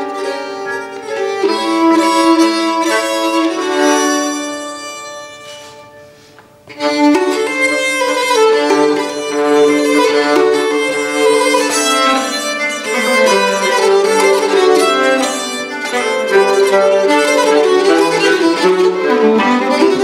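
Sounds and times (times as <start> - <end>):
two bowed keyed fiddles duet: 0.0 - 20.0.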